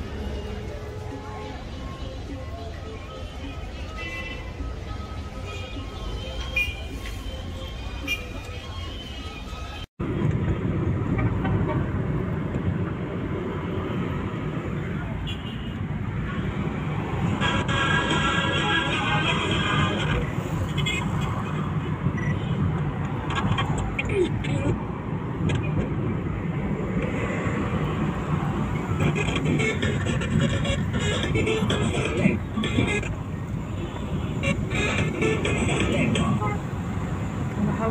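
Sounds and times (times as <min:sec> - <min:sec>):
car engine and road noise: 0:00.0 - 0:37.9.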